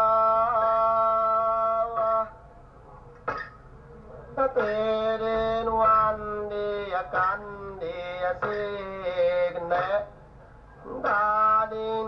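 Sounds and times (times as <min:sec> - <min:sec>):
long held sung notes: 0:04.4 - 0:10.1.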